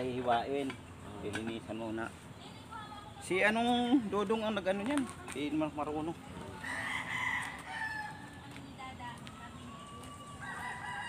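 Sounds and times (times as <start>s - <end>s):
rooster crowing: 6.6s - 8.4s, 9.8s - 11.0s.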